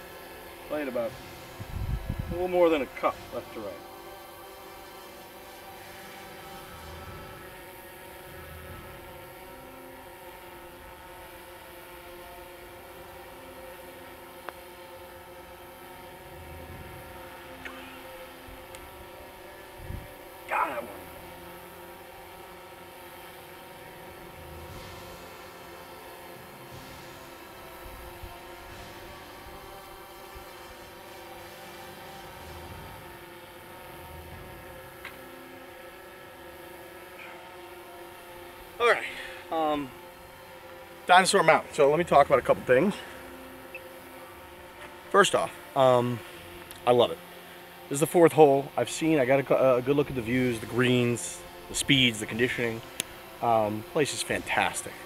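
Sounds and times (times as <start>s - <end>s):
camera drone propellers humming: 0.0s - 55.0s.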